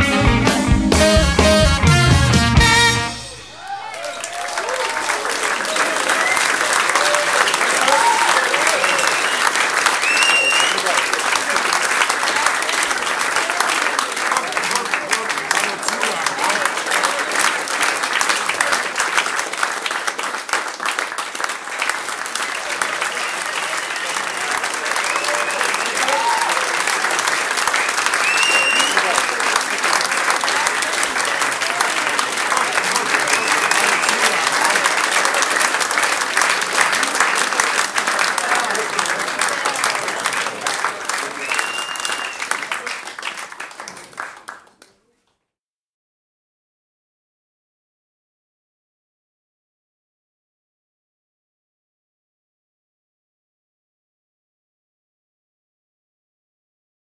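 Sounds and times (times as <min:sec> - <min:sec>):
audience applauding and cheering: 0:00.0 - 0:44.9
rising whistle: 0:10.0 - 0:10.8, 0:28.2 - 0:29.1, 0:41.4 - 0:42.5.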